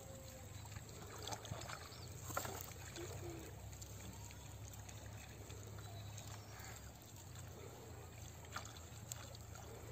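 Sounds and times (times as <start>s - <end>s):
feet splashing in muddy water: 0.0s - 9.9s.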